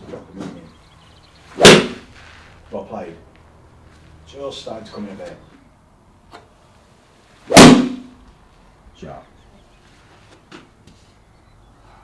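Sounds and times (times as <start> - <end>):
golf club striking ball: 1.6 - 2.1, 7.5 - 8.1.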